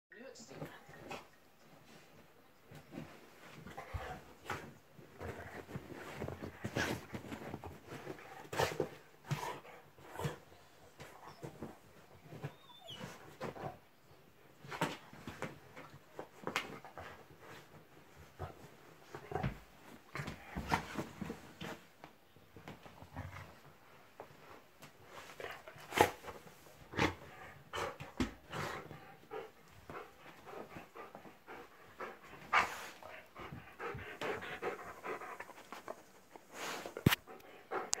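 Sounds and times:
dog whining: 12.4 - 13.3
dog panting hard: 27.0 - 38.0.

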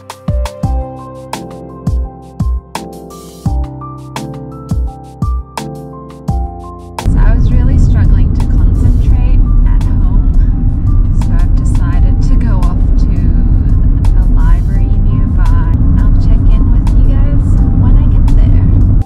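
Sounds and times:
car road and engine rumble: 7.0 - 19.0.

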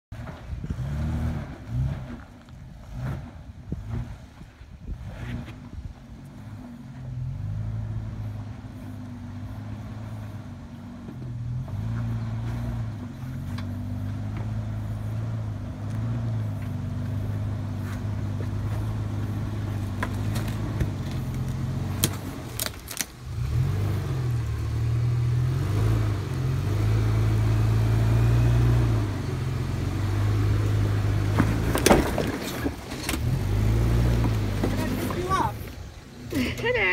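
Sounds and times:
truck engine droning: 0.1 - 36.9.

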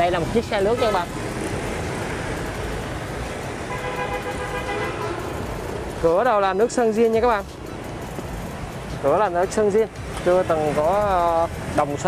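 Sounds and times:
road traffic noise: 0.0 - 12.0
vehicle horn held note: 3.8 - 5.2.

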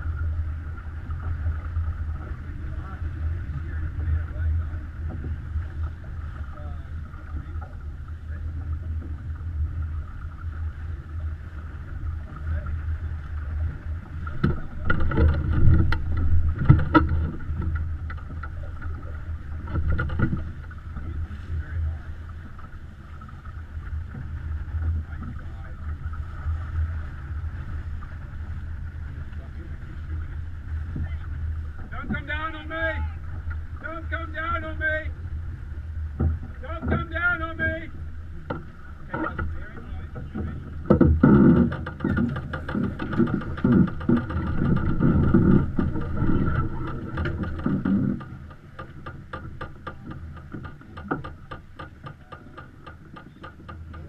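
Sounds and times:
water and wind rushing: 0.0 - 54.0
knocks: 40.3 - 54.0.

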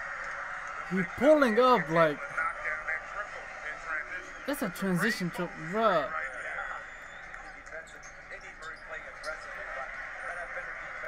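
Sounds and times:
arena crowd noise: 0.0 - 11.0
commentator talking: 0.9 - 2.9, 4.1 - 6.4.

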